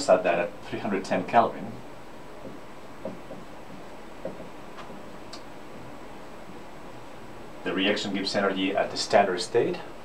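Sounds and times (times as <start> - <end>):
marker tapping on whiteboard: 2.4 - 3.5, 4.2 - 5.0.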